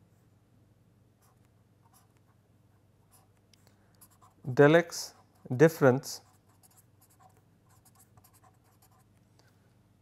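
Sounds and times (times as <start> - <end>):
pen writing on paper: 6.3 - 9.0.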